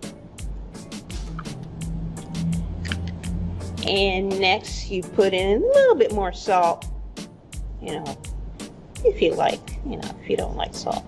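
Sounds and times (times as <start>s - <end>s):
percussive background music: 0.0s - 11.0s.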